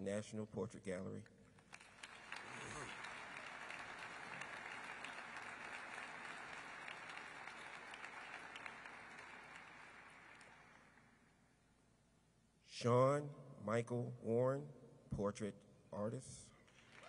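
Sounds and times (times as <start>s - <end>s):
audience applause: 1.7s - 10.8s, 16.8s - 17.0s.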